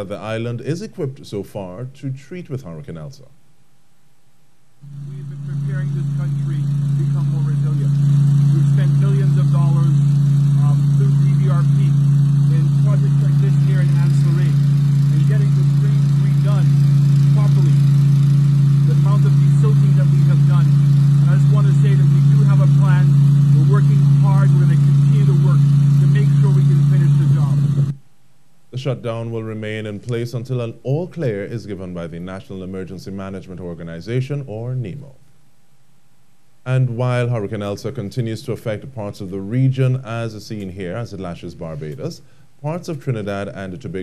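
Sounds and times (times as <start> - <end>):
engine droning: 4.8 - 28.0.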